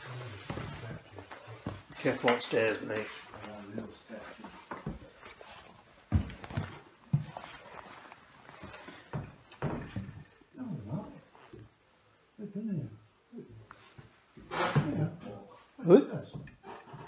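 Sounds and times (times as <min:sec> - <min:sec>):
footsteps on wooden stairs: 0:00.0 - 0:10.4.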